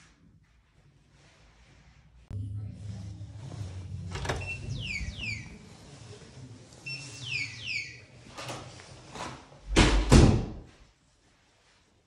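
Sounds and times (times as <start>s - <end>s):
low hum: 2.2s - 6.9s
falling electronic chirps: 4.4s - 5.6s, 6.9s - 8.0s.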